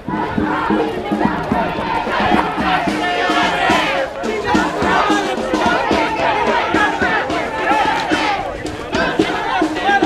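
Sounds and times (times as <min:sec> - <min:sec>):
crowd shouting: 0:00.0 - 0:10.0.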